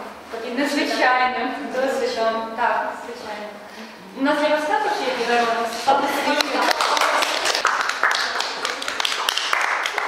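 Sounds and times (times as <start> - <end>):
audience applauding: 6.4 - 10.0.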